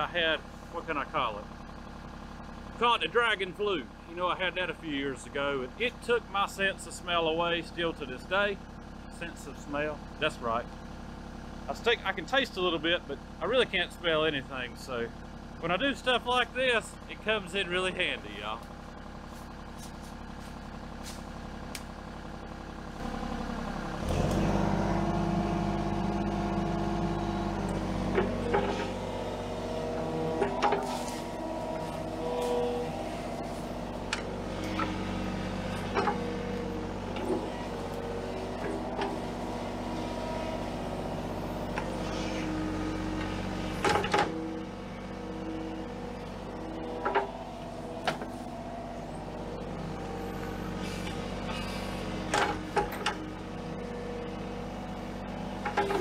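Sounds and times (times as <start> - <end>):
diesel engine idling and revving: 0.0 - 56.0
excavator bucket clanking: 27.4 - 40.3, 42.5 - 44.6, 45.3 - 48.8, 51.0 - 53.4, 55.5 - 56.0.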